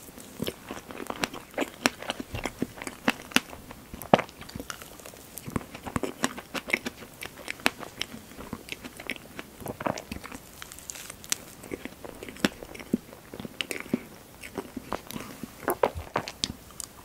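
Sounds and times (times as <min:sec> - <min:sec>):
chewing with wet mouth smacks: 0:00.2 - 0:17.0.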